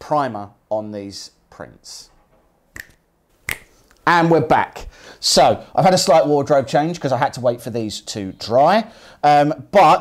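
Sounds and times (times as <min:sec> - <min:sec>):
finger snaps: 0:02.8 - 0:04.0.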